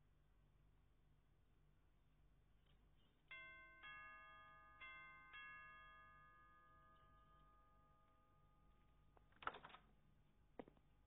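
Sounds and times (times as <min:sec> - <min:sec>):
two-note doorbell chime: 0:03.3 - 0:09.1.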